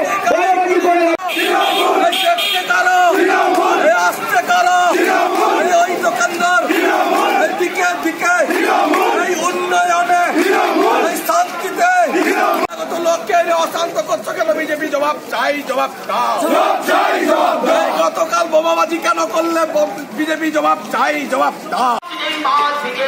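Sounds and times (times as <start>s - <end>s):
crowd shouting slogans: 0.0s - 12.9s, 16.1s - 18.3s.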